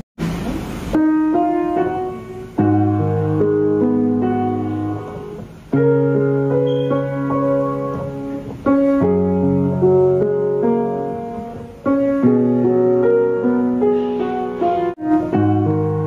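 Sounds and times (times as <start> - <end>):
soft slow piano: 0.2 - 16.0.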